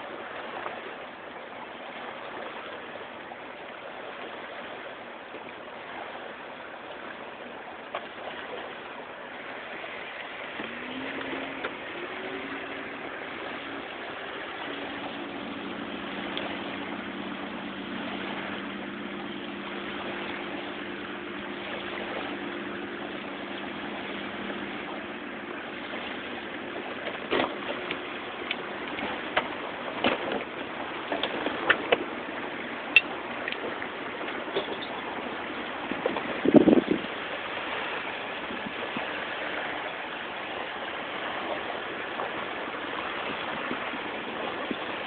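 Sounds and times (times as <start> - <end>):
small waves lapping on shore: 0.0 - 45.0
engine drone: 5.7 - 45.0.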